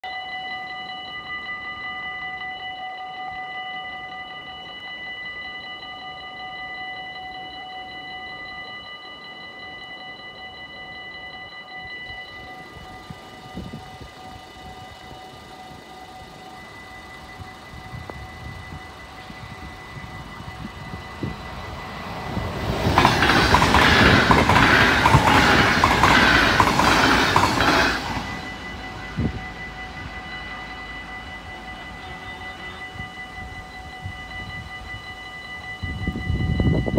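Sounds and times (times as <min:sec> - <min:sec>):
level-crossing warning bell ringing: 0:00.0 - 0:36.9
train wheels rushing on rails: 0:19.2 - 0:34.1.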